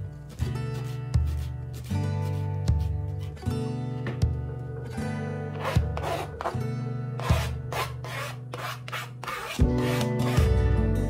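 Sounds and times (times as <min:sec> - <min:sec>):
gentle acoustic guitar music: 0:00.0 - 0:11.0
knife scraping chopped herbs: 0:05.5 - 0:06.6, 0:07.2 - 0:10.5.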